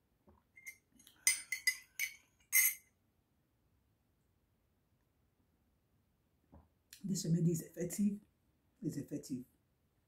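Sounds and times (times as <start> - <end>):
metal spoon clinking in ceramic mug: 0.6 - 2.9.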